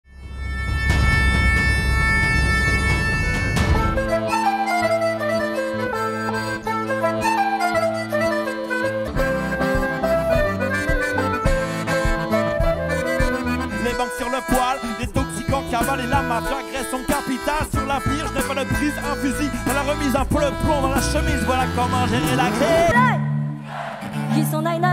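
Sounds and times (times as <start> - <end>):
flute: 0.2 - 23.4
accordion: 0.2 - 24.9
low drum beats: 0.4 - 4.4, 9.8 - 16.9, 17.6 - 22.9.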